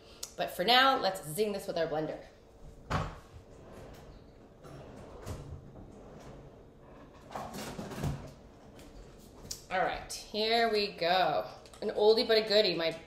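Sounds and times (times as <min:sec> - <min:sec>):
cupboard opening and shutting: 0:02.7 - 0:09.5.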